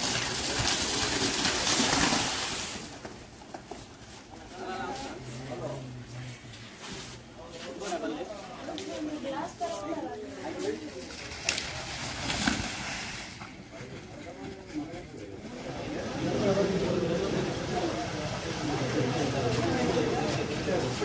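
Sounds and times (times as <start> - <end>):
crowd talking and calling out: 13.4 - 21.0.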